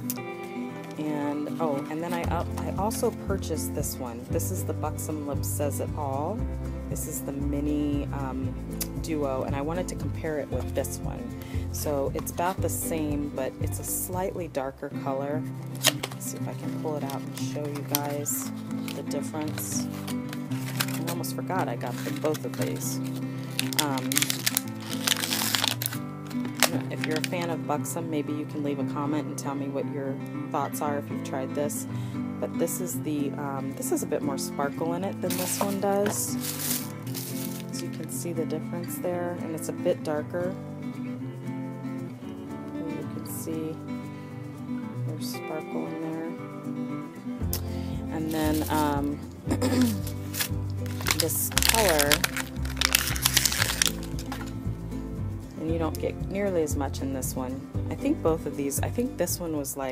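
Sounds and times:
background music: 0:00.0 - 0:59.9
packaging crinkling: 0:15.7 - 0:16.4, 0:17.0 - 0:27.5, 0:35.3 - 0:37.8, 0:48.4 - 0:54.6.

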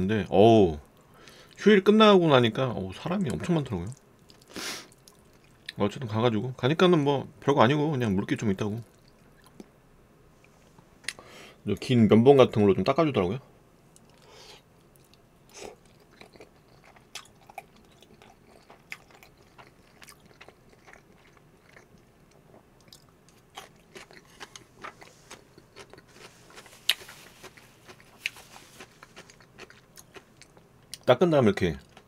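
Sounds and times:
man chewing wet clicks: 0:08.8 - 0:09.7, 0:13.9 - 0:31.1
crunching pickle: 0:13.9 - 0:32.0.

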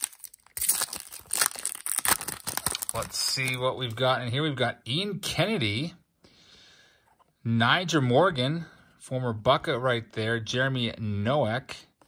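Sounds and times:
foil wrapper tearing and crinkling: 0:00.0 - 0:03.6.

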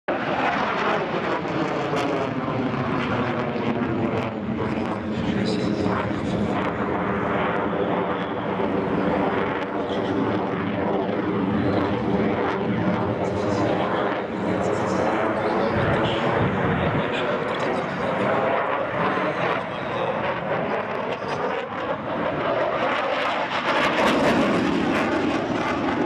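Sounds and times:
jet engines roaring overhead: 0:00.1 - 0:26.0.

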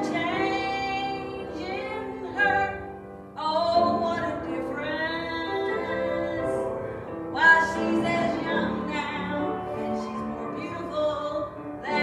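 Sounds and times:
woman singing: 0:00.0 - 0:06.7, 0:07.3 - 0:12.0
piano accompaniment: 0:00.0 - 0:12.0.

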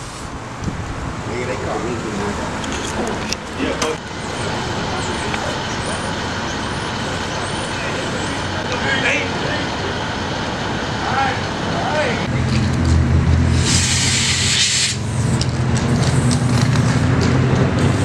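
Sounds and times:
street traffic noise: 0:00.0 - 0:18.0
vehicle engine running low: 0:00.0 - 0:18.0
loud high hiss: 0:13.5 - 0:15.3.

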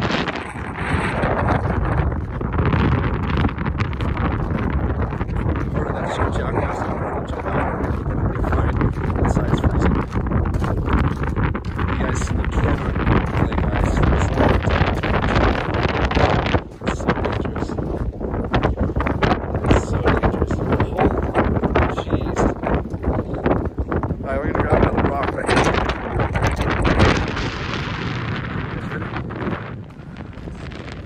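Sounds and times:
wind buffeting microphone: 0:00.0 - 0:31.0
footsteps crunching on gravel: 0:00.1 - 0:31.0.

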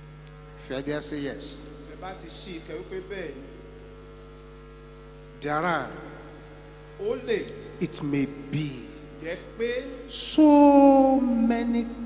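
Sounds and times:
electrical mains hum: 0:00.0 - 0:12.0
man's voice: 0:07.0 - 0:12.0.

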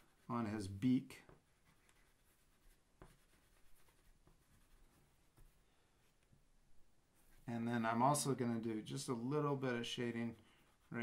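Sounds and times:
pastels scratching on paper: 0:00.0 - 0:00.5, 0:01.3 - 0:05.6.

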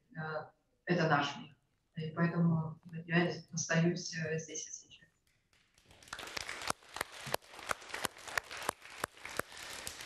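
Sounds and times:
children applauding: 0:05.7 - 0:10.0.

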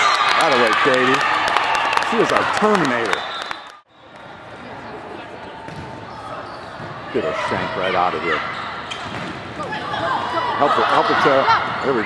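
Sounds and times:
gym hall noise: 0:00.0 - 0:12.0.

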